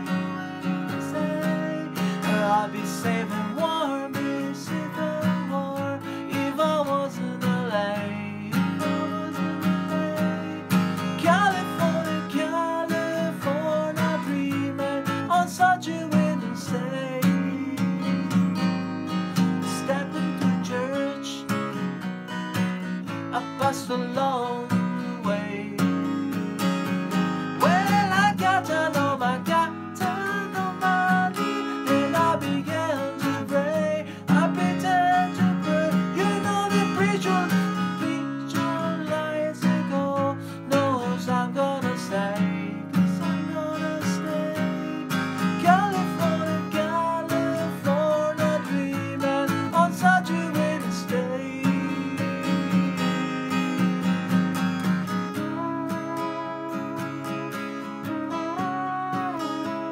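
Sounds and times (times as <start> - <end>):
man singing: 0.0 - 22.1, 23.0 - 26.8, 27.6 - 53.0, 55.2 - 59.9
acoustic guitar strumming: 0.0 - 59.9.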